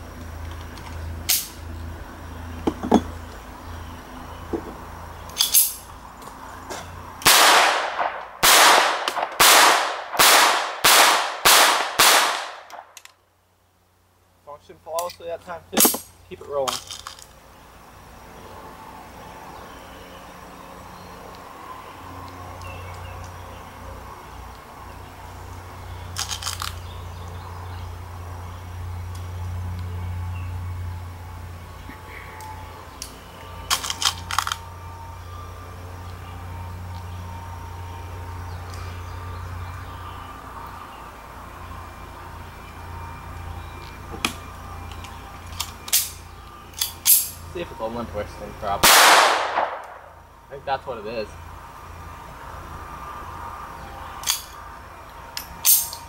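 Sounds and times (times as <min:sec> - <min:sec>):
sharp metallic pistol clicks: 0:01.3 - 0:01.6, 0:07.2 - 0:13.2, 0:44.2 - 0:47.4, 0:48.8 - 0:50.1.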